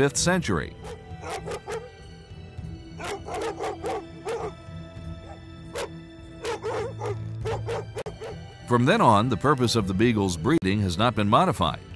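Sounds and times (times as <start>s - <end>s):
background music: 0.0s - 11.9s
dog barking: 0.8s - 1.9s, 3.0s - 4.6s, 5.2s - 8.4s.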